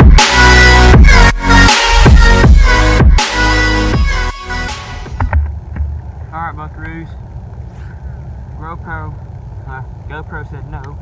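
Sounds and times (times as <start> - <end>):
steady low rumble: 0.8 - 11.0.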